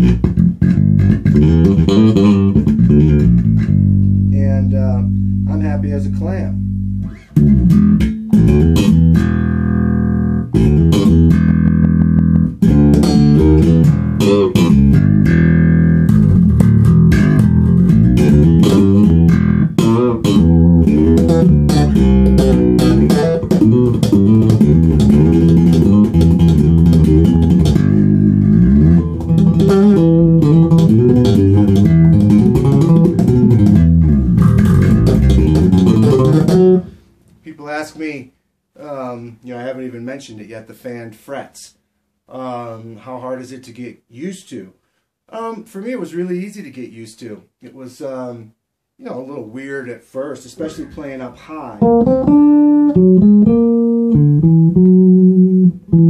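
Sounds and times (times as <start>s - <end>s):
electric bass funk line: 0.0s - 37.0s, 51.8s - 56.0s.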